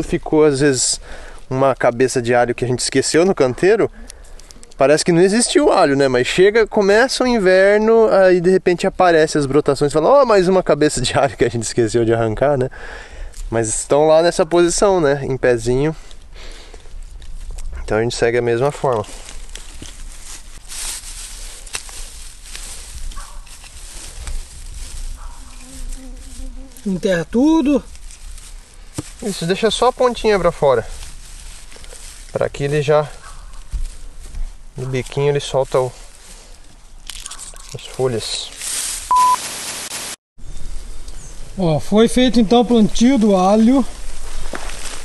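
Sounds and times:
straw mulch rustling and crackling: 0.0 - 3.5, 13.3 - 45.0
short electronic beep: 39.1 - 39.4
hiss: 39.4 - 40.2.

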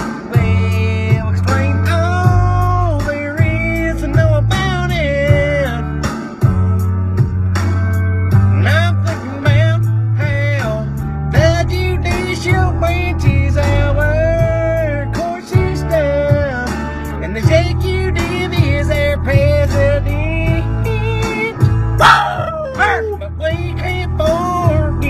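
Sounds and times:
song with singing bass and drums: 0.0 - 25.0.

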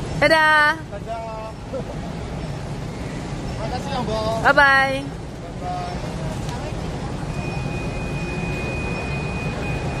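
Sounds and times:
terminal hall hum: 0.0 - 10.0
high-pitched electronic tone: 7.3 - 10.0.

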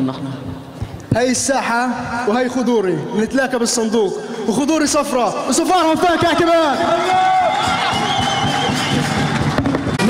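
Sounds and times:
music over stage loudspeakers: 5.5 - 10.0.

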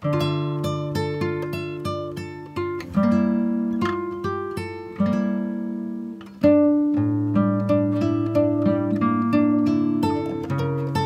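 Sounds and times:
acoustic guitar picking notes: 0.0 - 11.0.

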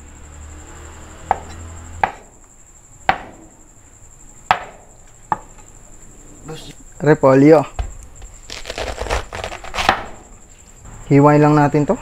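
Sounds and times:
cleaver chopping on wooden board: 1.2 - 2.3, 3.1 - 3.4, 4.5 - 4.8, 9.0 - 10.2.

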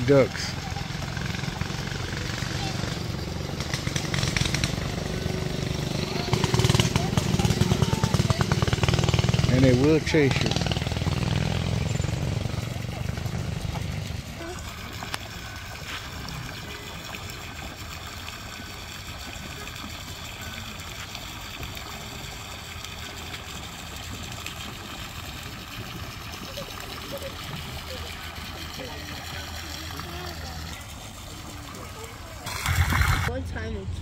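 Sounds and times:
water splashing into pond: 0.0 - 33.5.

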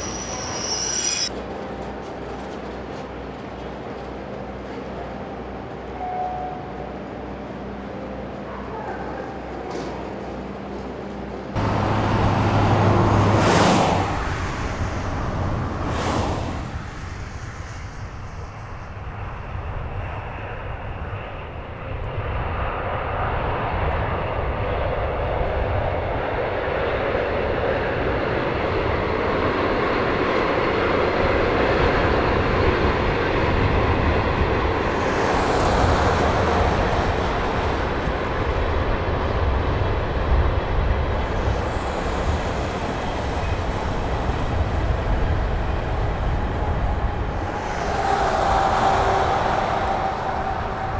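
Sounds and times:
train wheels on rails: 0.0 - 5.9, 32.2 - 50.9
diesel locomotive rumble: 9.2 - 19.2, 33.0 - 50.9.

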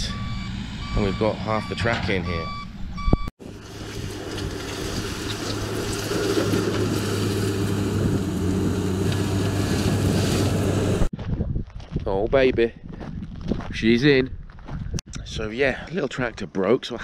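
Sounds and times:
diesel engine under load: 0.0 - 11.1
bucket pushing stone: 3.5 - 8.2.

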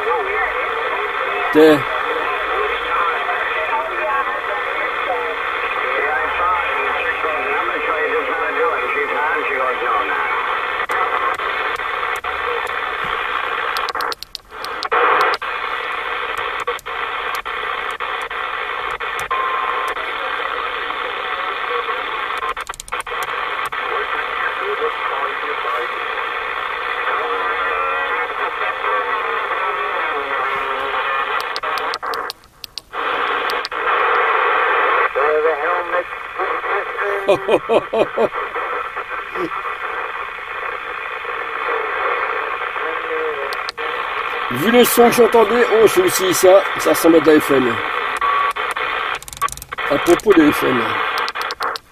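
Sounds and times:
overlapping radio voices: 0.0 - 51.9
radio static: 0.0 - 51.9.

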